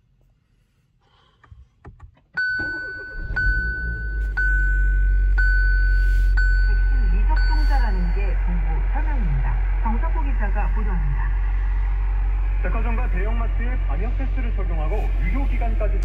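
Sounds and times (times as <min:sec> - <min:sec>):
car engine starting and idling: 0:02.4 - 0:16.0
warning chime: 0:02.5 - 0:08.3.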